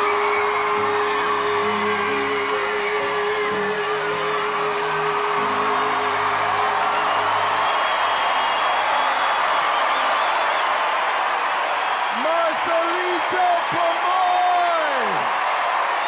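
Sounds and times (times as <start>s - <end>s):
backing music: 0.0s - 10.2s
audience cheering and applauding: 0.0s - 16.0s.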